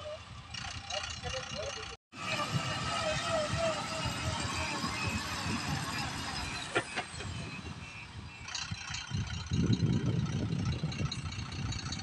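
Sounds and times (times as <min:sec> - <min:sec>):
voices: 0:00.0 - 0:08.0
diesel truck engine running: 0:00.0 - 0:12.0.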